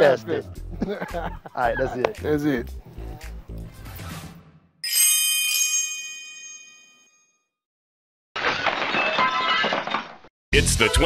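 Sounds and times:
metallic bell ding: 4.8 - 7.4.

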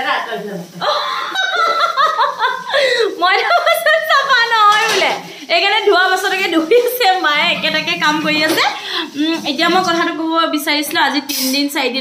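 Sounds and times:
woman laughing: 0.8 - 4.0.

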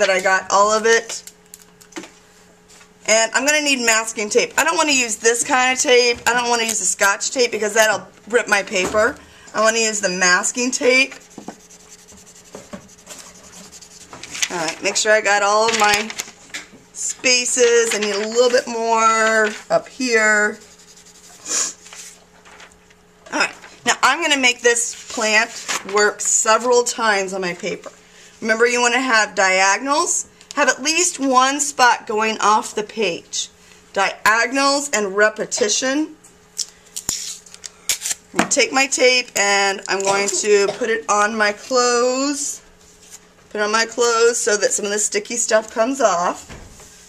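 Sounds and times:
pencil shading on paper: 11.1 - 14.2, 20.5 - 21.5.

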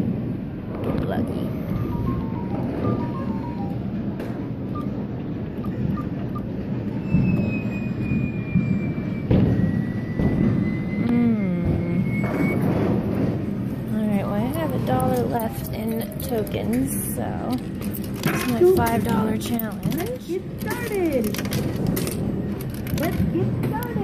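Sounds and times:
long high electronic tone: 7.1 - 12.6.

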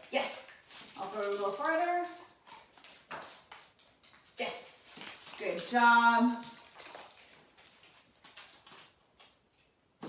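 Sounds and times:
small dog paws tapping on floor: 0.0 - 9.8.

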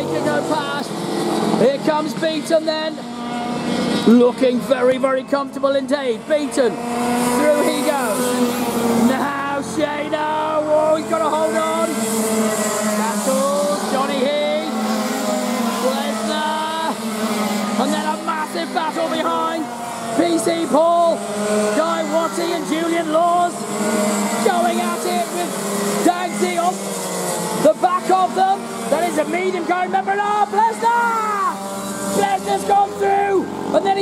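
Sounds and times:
racing kart engines: 0.0 - 34.0
voices: 0.0 - 34.0.

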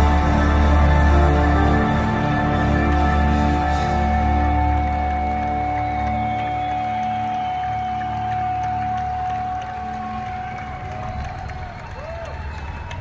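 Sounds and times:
low drone: 0.0 - 13.0.

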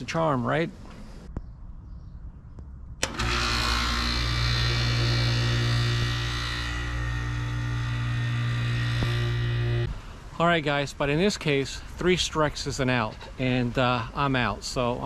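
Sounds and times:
electrical hum with rushing hiss: 2.9 - 12.9
contactor clicking shut: 3.0 - 9.6.

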